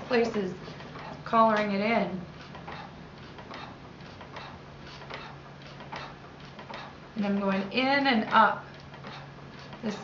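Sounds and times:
pottery wheel ticking: 0:00.0 - 0:10.0
steady low hum: 0:00.0 - 0:10.0.

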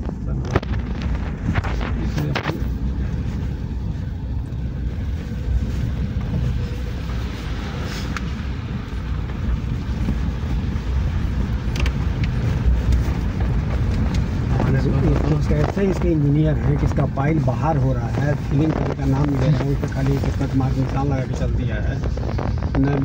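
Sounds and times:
vehicle rumbling on rough road: 0:00.0 - 0:23.0.

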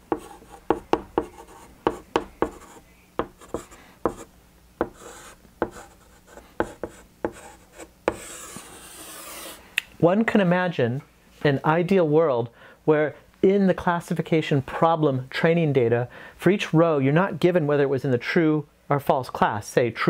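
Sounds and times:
chalk scraping a line: 0:00.0 - 0:09.6
chalk writing on blackboard: 0:00.0 - 0:09.6.

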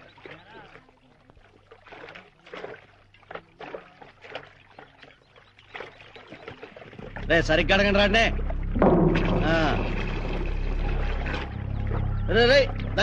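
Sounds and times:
water splashing and sloshing: 0:00.0 - 0:13.0.

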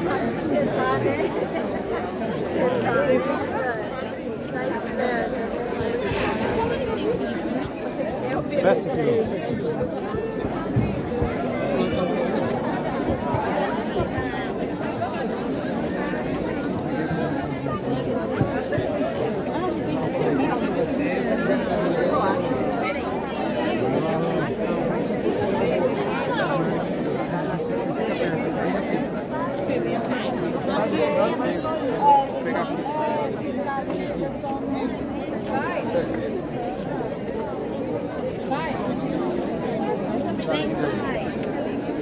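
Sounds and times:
crowd chatter: 0:00.0 - 0:42.0.

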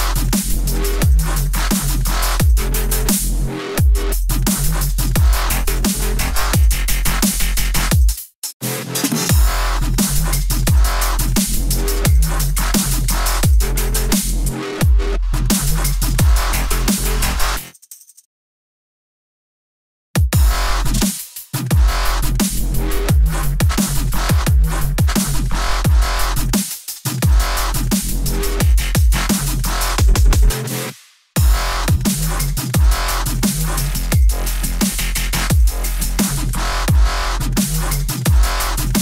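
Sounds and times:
deep bass line: 0:00.0 - 0:08.0, 0:09.3 - 0:17.6, 0:20.2 - 0:21.1, 0:21.7 - 0:26.6, 0:27.2 - 0:30.7, 0:31.4 - 0:39.0
crisp hi-hats: 0:00.0 - 0:14.6, 0:15.5 - 0:18.1, 0:20.9 - 0:30.6, 0:31.4 - 0:39.0
kick drum hits: 0:20.2 - 0:20.5
electronic dance music: 0:31.4 - 0:39.0.

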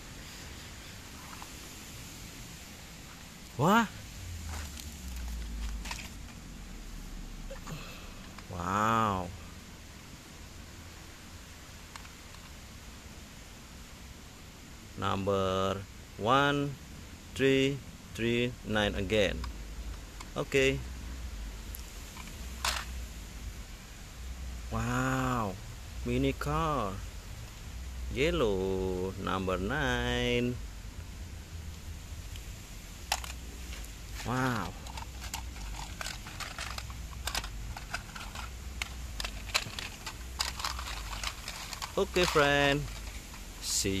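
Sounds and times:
low steady rumble: 0:00.0 - 0:44.0
plastic toys clattering: 0:04.5 - 0:06.4, 0:22.1 - 0:23.0, 0:33.0 - 0:43.8.

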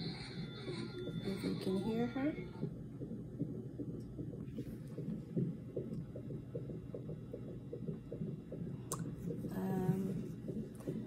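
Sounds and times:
doppler fetal heartbeat pulse: 0:00.0 - 0:11.0.

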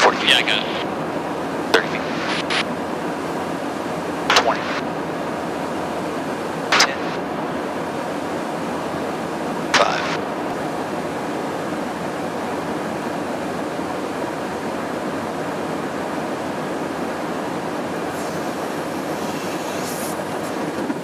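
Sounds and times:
aircraft cabin rushing noise: 0:18.1 - 0:21.0.

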